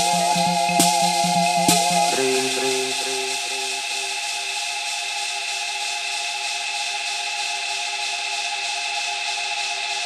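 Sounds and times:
held drone tones: 0.0s - 4.3s
repeating electronic notes: 0.0s - 4.8s.

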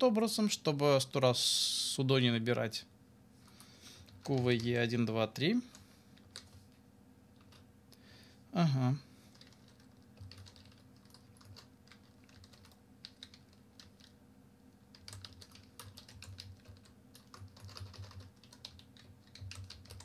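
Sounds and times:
computer keyboard typing: 9.3s - 14.2s, 14.9s - 20.0s.

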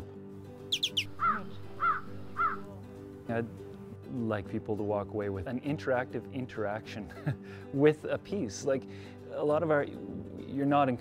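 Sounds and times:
soft background music: 0.0s - 11.0s
high bird chirps: 0.7s - 2.6s
bird calling: 0.7s - 2.7s.

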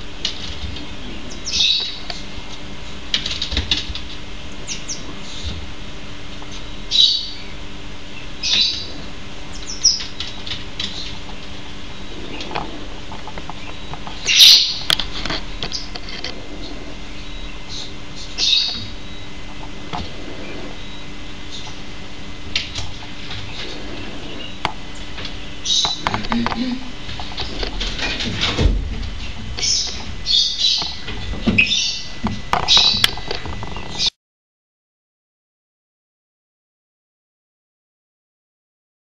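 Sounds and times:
marmoset chirping calls: 1.3s - 2.0s, 6.5s - 7.5s, 8.4s - 10.3s, 13.6s - 14.9s, 16.6s - 19.2s, 29.6s - 31.0s, 31.6s - 33.0s.

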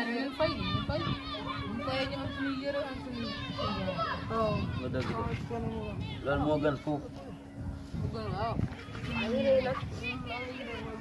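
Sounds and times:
boys talking: 0.0s - 11.0s
steady low hum: 0.3s - 11.0s.

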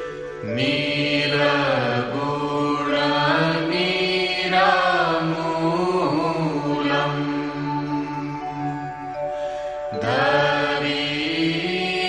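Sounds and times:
person chanting long held notes: 0.0s - 12.0s
steady low drone: 0.0s - 12.0s.

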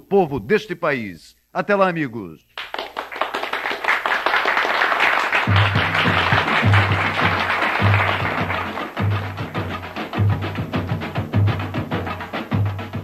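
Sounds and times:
audience applause: 2.6s - 9.7s
band music: 5.4s - 13.0s.

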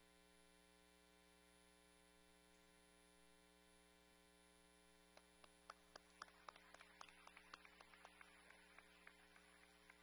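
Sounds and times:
electrical mains hum: 0.0s - 10.0s
scattered hand claps: 5.2s - 10.0s.

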